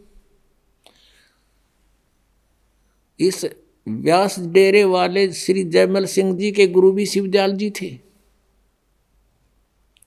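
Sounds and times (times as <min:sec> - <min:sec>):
man's soft breath: 0:00.8 - 0:01.8.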